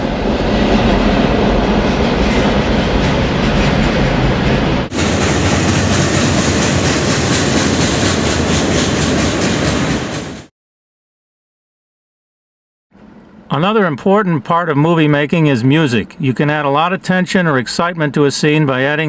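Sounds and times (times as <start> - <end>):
train wheels clattering on rails: 0.4 - 10.5
clickety-clack of train wheels: 1.8 - 10.5.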